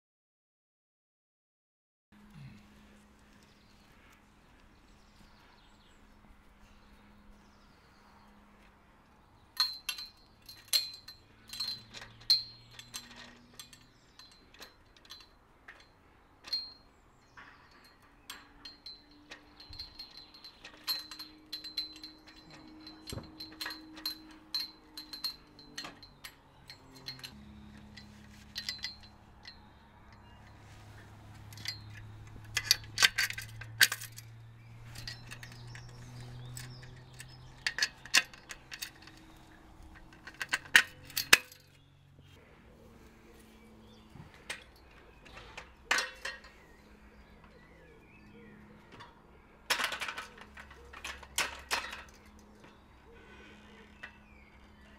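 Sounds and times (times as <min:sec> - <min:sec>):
metal ladder parts clinking: 0:09.4 - 0:54.9.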